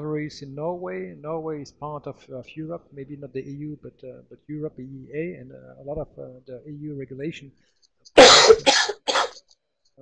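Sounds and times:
speech: 0:00.0 - 0:07.6
person coughing: 0:08.2 - 0:09.4.

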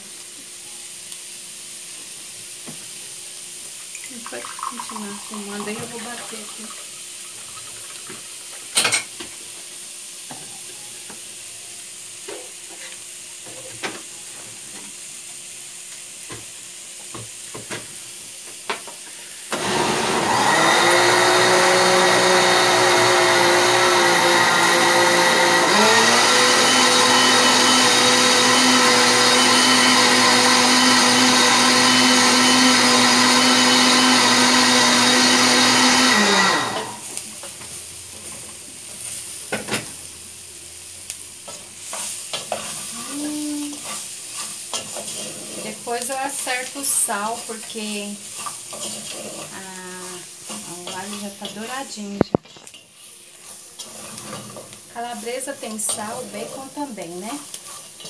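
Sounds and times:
sausage and onion sizzling: 0:00.0 - 0:58.0
food processor motor running: 0:19.5 - 0:37.1
wooden spoon stirring: 0:43.7 - 0:51.7, 0:53.4 - 0:58.0.

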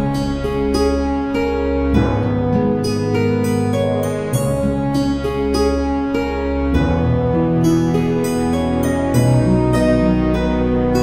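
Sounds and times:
calm instrumental new-age music: 0:00.0 - 0:11.0.

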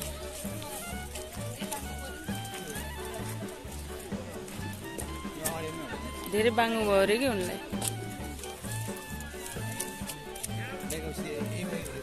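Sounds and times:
background music with low beat: 0:00.0 - 0:12.0.

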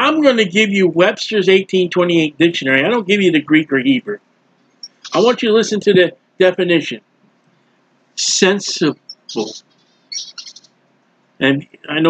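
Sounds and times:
small bird chirping: 0:04.6 - 0:05.4, 0:08.2 - 0:10.8.

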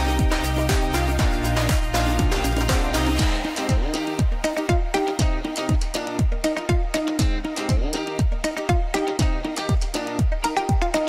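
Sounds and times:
upbeat music with booming kick drum: 0:00.0 - 0:11.0.

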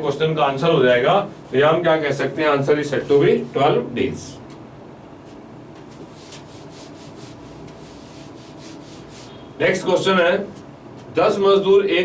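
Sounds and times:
cloth rubbing on writing surface: 0:06.0 - 0:09.4.

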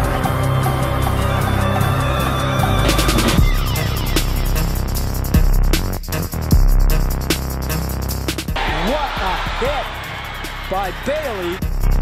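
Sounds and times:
electronic music with heavy beat: 0:00.0 - 0:12.0
stadium crowd shouting: 0:08.6 - 0:11.6.

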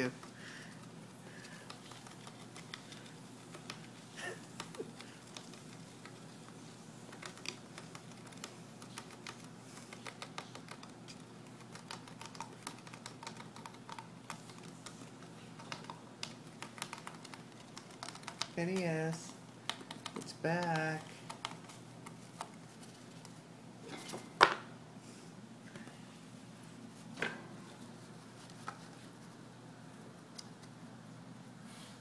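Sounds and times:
gerbil clicking and scratching: 0:00.0 - 0:23.4.

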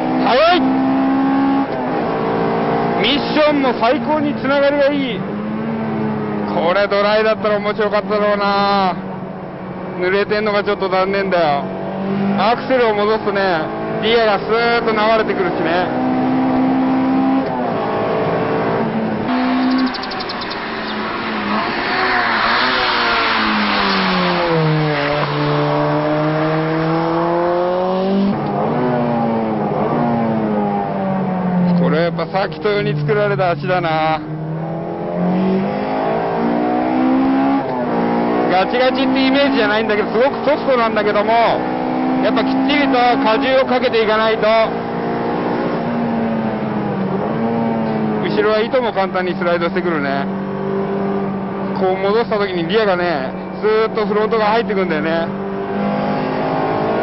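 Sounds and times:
high-revving car engine: 0:00.0 - 0:57.0.

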